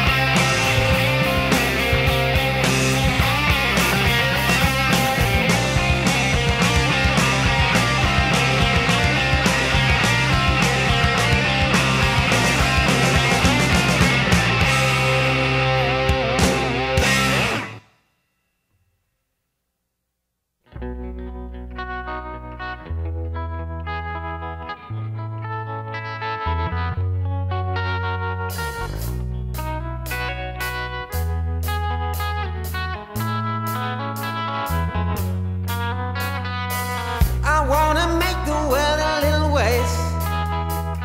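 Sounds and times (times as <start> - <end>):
hard rock song: 0.0 - 17.8, 28.4 - 41.0
distorted electric guitar riff: 0.0 - 17.9, 20.7 - 41.0
drums: 0.0 - 18.1, 27.8 - 41.0.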